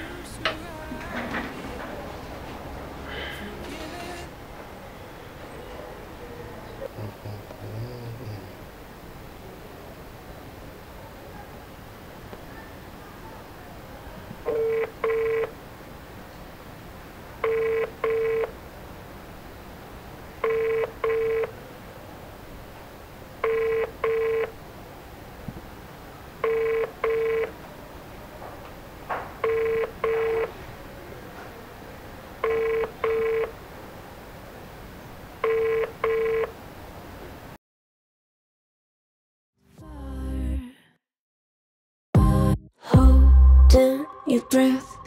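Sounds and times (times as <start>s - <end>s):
phone ringback double beep: 14.5s - 15.5s, 17.4s - 18.5s, 20.4s - 21.5s, 23.4s - 24.5s, 26.4s - 27.5s, 29.4s - 30.5s, 32.4s - 33.5s, 35.4s - 36.5s.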